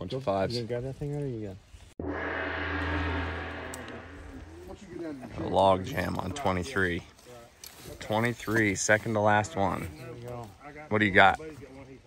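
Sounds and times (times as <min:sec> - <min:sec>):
gong strike with low ring: 0:02.0 - 0:04.9.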